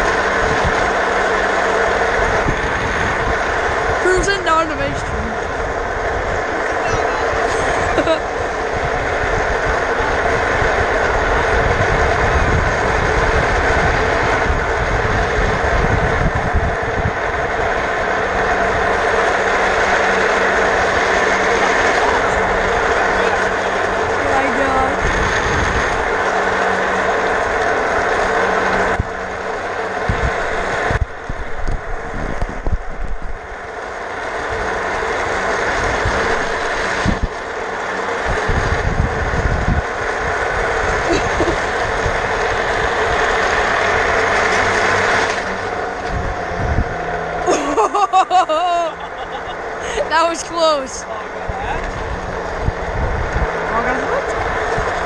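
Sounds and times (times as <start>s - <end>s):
chair casters rolling over asphalt: 0.0s - 55.0s
wind noise: 0.0s - 55.0s.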